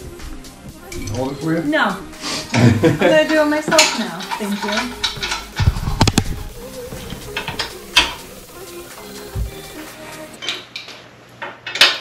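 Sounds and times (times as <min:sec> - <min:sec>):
metal tools clinking and knocking: 0:03.2 - 0:05.7.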